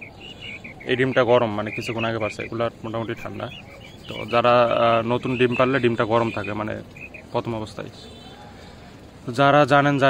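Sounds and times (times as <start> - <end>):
rapid high chirping: 0.0 - 8.4
man speaking: 0.8 - 8.2.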